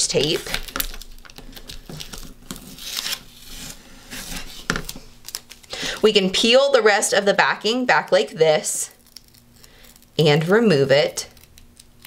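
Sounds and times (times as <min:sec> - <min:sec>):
tape ripping and crinkling: 0:00.1 - 0:05.8, 0:08.9 - 0:12.0.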